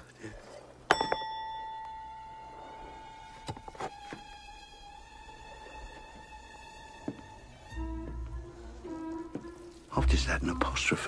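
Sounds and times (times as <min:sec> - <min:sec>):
bright ding: 0:00.9 - 0:02.5.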